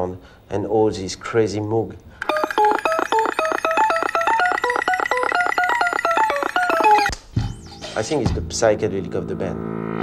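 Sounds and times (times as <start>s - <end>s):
fast synthesizer bleeping sequence: 2.2s - 8.0s.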